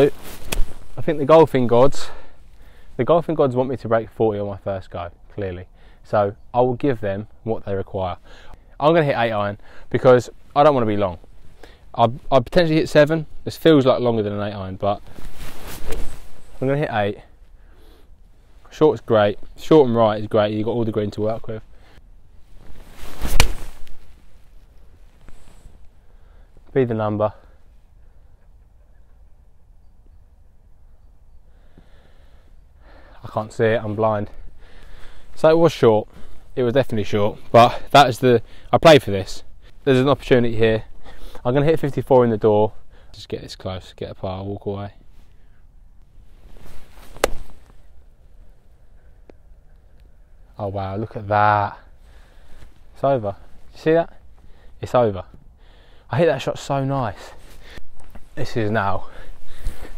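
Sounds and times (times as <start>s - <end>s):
golf club swing swish: 0.0s - 1.0s, 15.1s - 16.5s, 22.5s - 24.3s, 46.4s - 47.9s
golf club swing whoosh: 22.7s - 24.2s, 46.5s - 47.8s
club striking golf ball: 23.2s - 23.9s, 47.1s - 47.6s.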